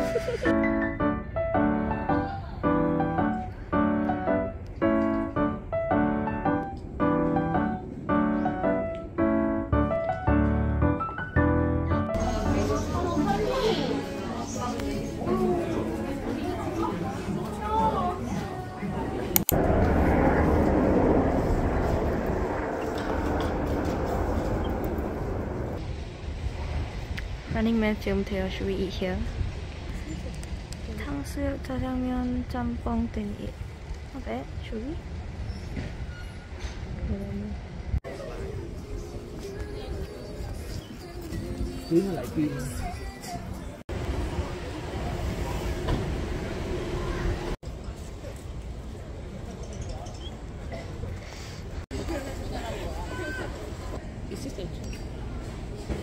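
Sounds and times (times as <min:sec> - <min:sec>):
low rumble of street ambience: 0:00.0 - 0:56.0
voices in a shop: 0:12.1 - 0:19.4, 0:36.8 - 0:56.0
crowd noise: 0:12.1 - 0:25.8, 0:38.0 - 0:56.0
traffic: 0:12.2 - 0:56.0.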